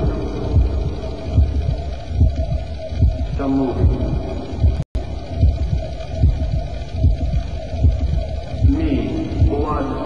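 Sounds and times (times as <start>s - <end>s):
droning hum: 0.0s - 10.0s
low thumping pulse: 0.0s - 10.0s.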